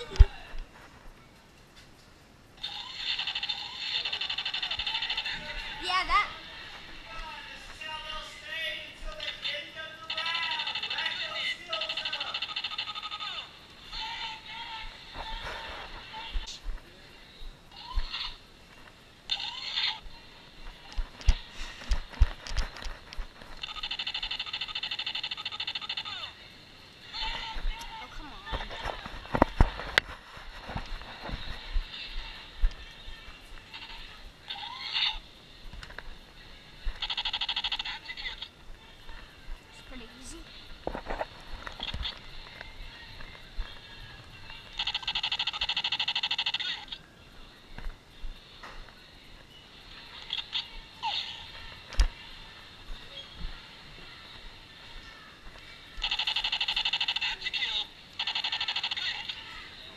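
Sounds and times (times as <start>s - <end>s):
laser tag gun rapid fire: 58.2s - 59.3s.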